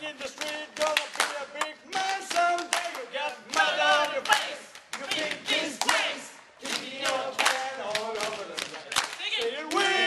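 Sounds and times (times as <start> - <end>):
group of voices singing: 0.0 - 8.7, 9.4 - 10.0
hand claps: 0.2 - 10.0.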